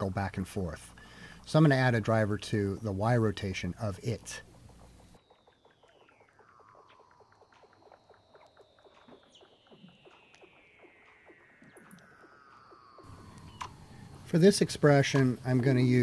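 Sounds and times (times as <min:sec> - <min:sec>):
seal whistles gliding downward: 0:04.7 - 0:14.3.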